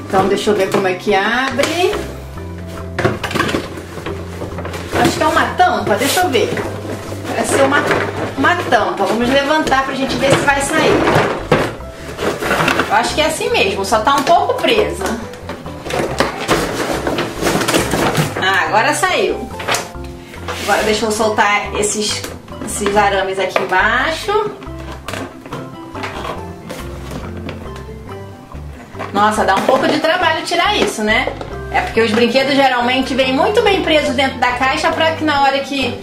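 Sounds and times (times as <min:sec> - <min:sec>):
light background music: 0:00.0 - 0:36.0
cardboard rubbing and scraping: 0:03.6 - 0:09.9, 0:10.5 - 0:13.1, 0:15.8 - 0:18.4.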